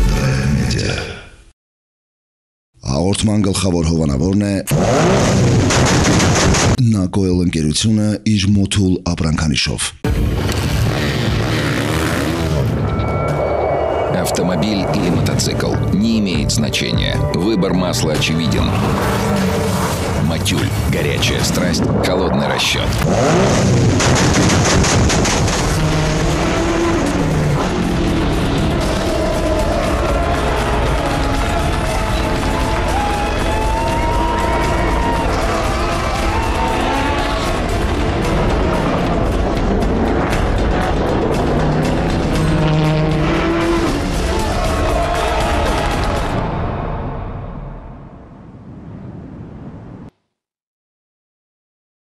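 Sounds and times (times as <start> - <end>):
race car engines revving: 4.7 - 6.6, 10.4 - 12.8, 18.6 - 20.9, 22.8 - 46.2
low rumbling noise: 18.5 - 50.1.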